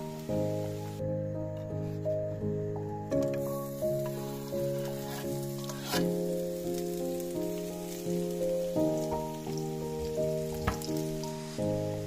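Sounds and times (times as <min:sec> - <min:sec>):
vegetables sizzling in hot oil: 0:00.0 - 0:01.0, 0:03.2 - 0:12.0
background music of held notes: 0:00.0 - 0:12.0.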